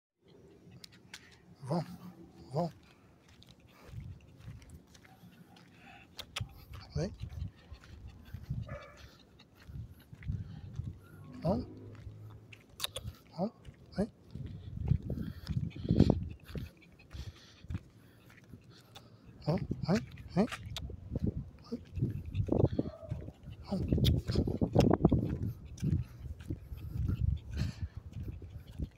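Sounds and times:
dog on a walk: 0.2s - 28.9s.

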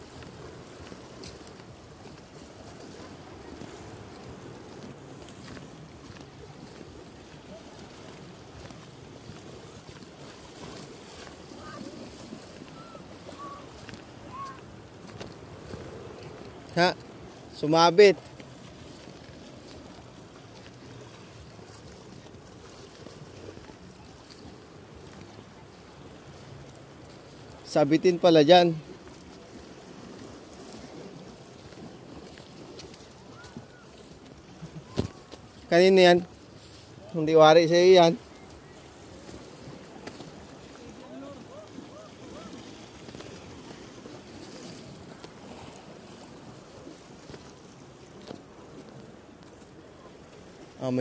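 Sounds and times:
wind rumbling on microphone: 0.0s - 27.6s, 28.8s - 37.2s
faint water splashes: 0.0s - 51.0s
small waves washing against rocks: 0.0s - 51.0s.

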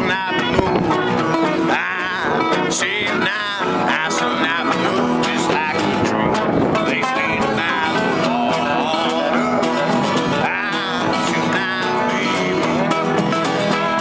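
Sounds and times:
acoustic guitar: 0.0s - 14.0s
man singing: 0.0s - 14.0s
resonator guitar: 0.0s - 14.0s.

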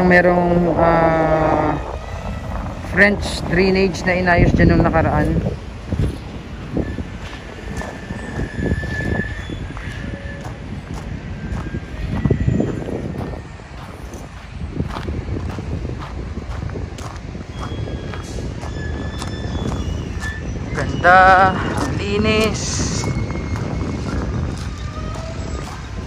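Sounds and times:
wind rumble on microphone: 0.0s - 26.0s
footsteps on sand: 5.1s - 20.3s, 21.8s - 26.0s.

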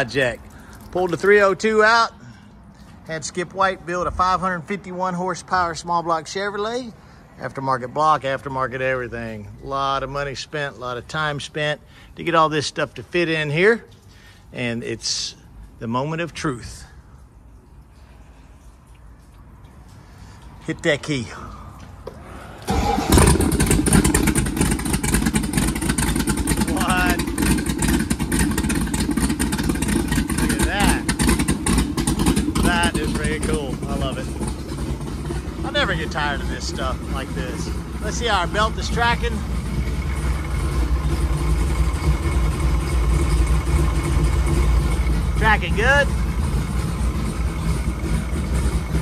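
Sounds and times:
boat engine starting and running: 0.0s - 49.0s.

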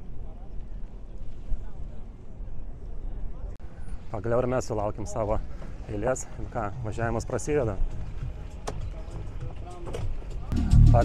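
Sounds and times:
faint distant voices: 0.0s - 10.6s
steady low rumble: 10.5s - 11.0s.

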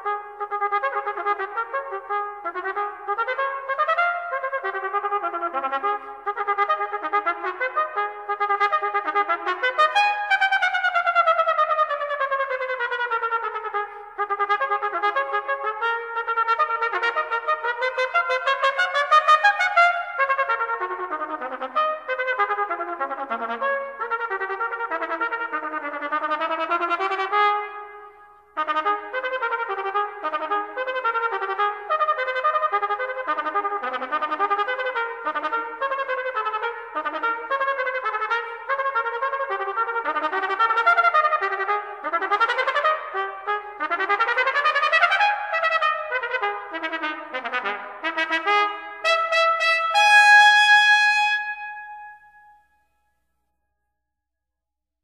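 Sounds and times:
trumpet playing staccato runs: 28.6s - 52.1s.

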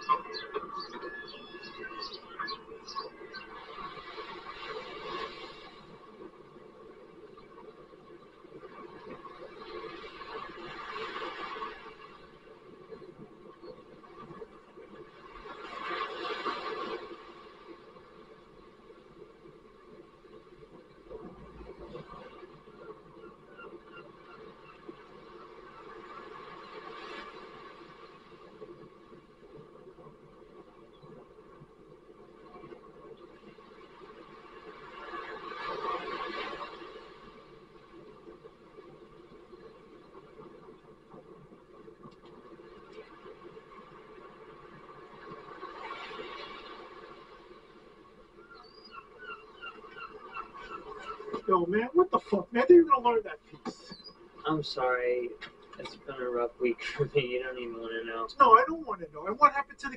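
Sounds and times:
sea waves washing up beach: 0.0s - 59.9s.

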